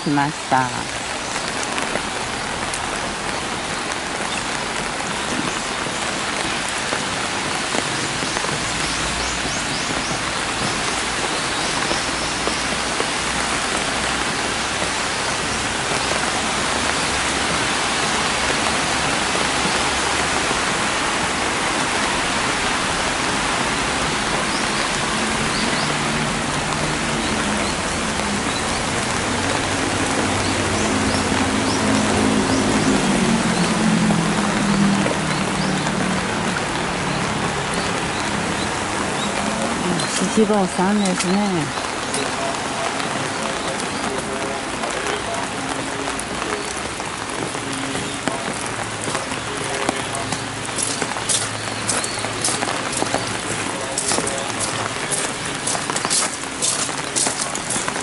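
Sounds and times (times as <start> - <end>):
steady rain falling: 0.0 - 58.0.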